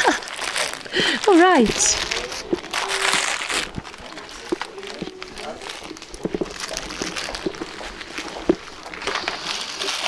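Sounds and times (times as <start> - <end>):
indistinct chatter of people: 0.0 - 10.0
knocks and paper rustles: 0.2 - 10.0.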